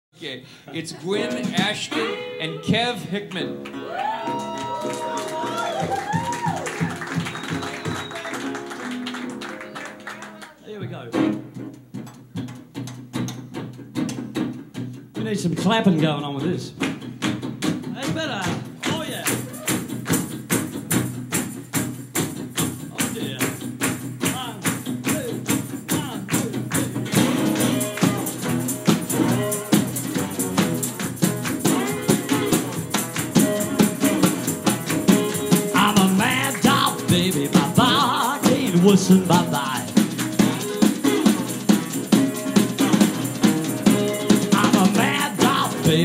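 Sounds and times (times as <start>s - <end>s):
slide resonator guitar: 8.0s - 46.0s
snare drum hits by hand: 16.8s - 46.0s.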